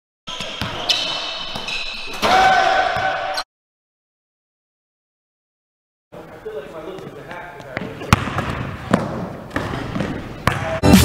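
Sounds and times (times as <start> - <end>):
shoe squeaks: 0.3 - 2.4.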